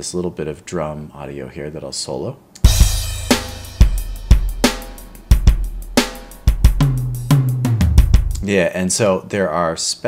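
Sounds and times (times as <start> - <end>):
snare drum: 2.6 - 8.4
hi-hat and cymbals: 2.6 - 8.5
kick drum: 2.7 - 8.4.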